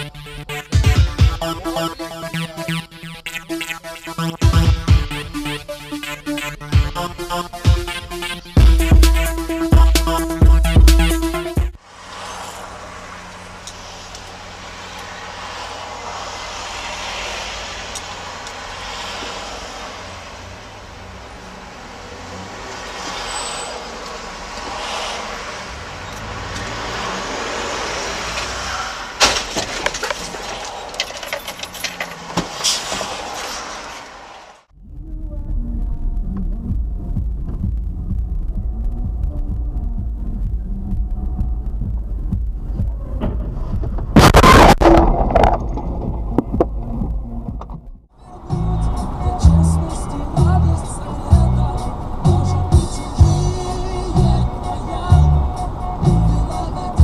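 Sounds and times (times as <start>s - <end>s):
traffic noise: 0.0s - 57.0s
deep vehicle rumble: 4.3s - 57.0s
sharp knocks and clatters: 29.2s - 33.5s.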